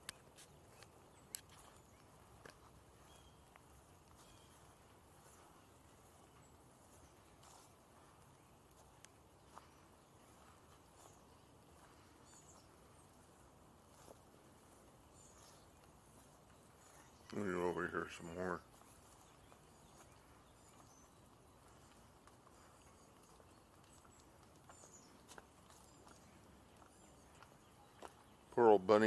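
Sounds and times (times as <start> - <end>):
soft ticks and clicks: 0.0 - 2.7, 8.7 - 9.7, 21.6 - 28.2.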